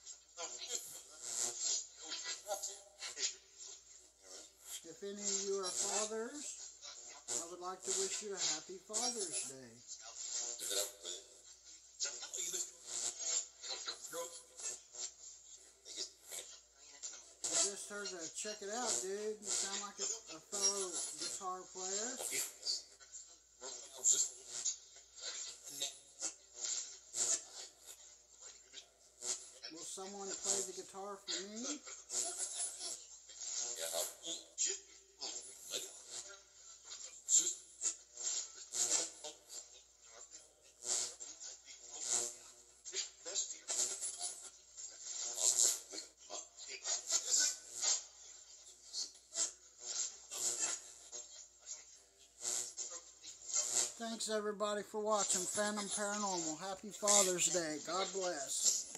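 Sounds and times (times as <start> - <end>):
choppy voice fragments and noise: 0.0 - 12.8, 17.1 - 22.9, 29.7 - 31.8, 53.9 - 58.9
bursts of hissing static: 3.3 - 9.8, 17.5 - 22.6, 52.5 - 58.9.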